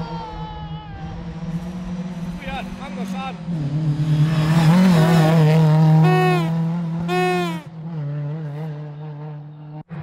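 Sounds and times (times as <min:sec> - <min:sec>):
rally car engine approaching: 0:00.0 - 0:10.0.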